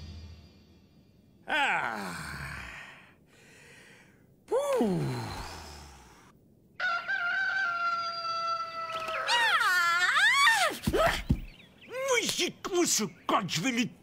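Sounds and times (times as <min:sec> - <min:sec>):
cartoon man groaning: 0:01.4 - 0:03.0.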